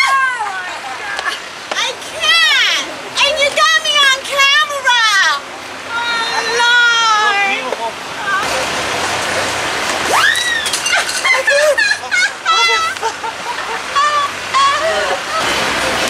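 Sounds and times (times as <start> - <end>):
people talking: 0.0 - 9.6, 10.9 - 16.0
street noise hiss: 0.0 - 16.0
high rising and falling cry: 10.0 - 15.7
people laughing: 10.7 - 16.0.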